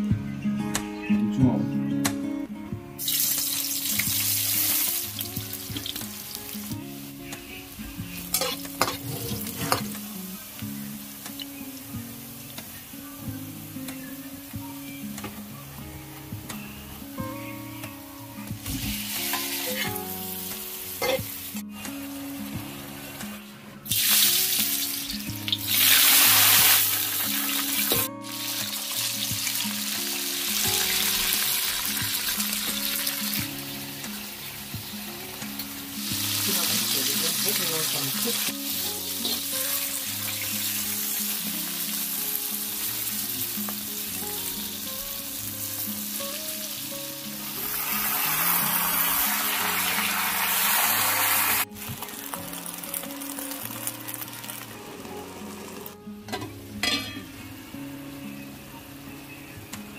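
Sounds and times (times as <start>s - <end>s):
background music with bass line: 0.0s - 59.9s
meat sizzling in hot oil: 3.0s - 12.4s, 18.6s - 21.6s, 23.9s - 55.9s.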